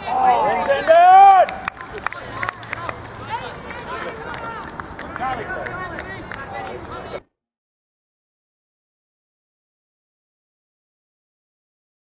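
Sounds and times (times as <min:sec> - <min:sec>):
loud drawn-out shout: 0:00.0 - 0:01.7
people shouting calls: 0:00.0 - 0:07.2.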